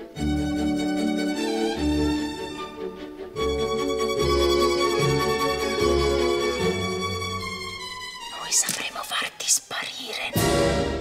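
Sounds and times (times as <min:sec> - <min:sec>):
woman speaking: 0:08.3 - 0:10.4
trailer music: 0:10.3 - 0:11.0.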